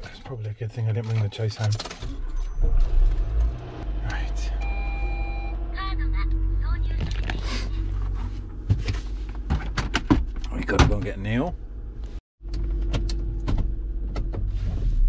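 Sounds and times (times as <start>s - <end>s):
car engine starting and idling: 0.0s - 15.0s.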